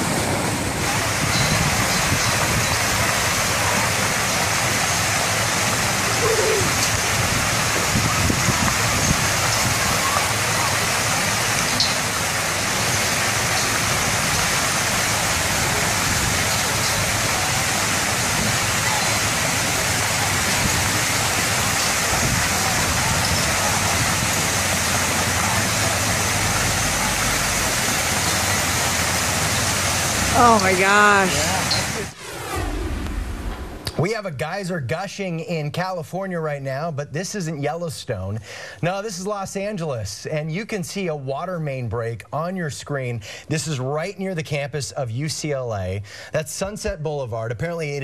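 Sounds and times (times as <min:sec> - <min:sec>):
water spraying onto street: 0:00.0 - 0:32.3
whoosh sound effect: 0:31.5 - 0:34.2
low rumble: 0:31.9 - 0:34.4.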